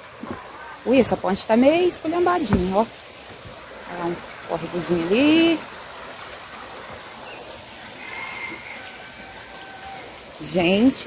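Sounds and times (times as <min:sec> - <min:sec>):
creek trickling: 0:00.0 - 0:11.0.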